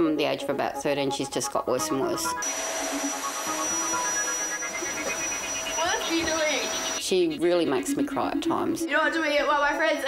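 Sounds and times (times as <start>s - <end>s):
steady hiss: 2.4s - 7.0s
high constant whine: 2.4s - 7.1s.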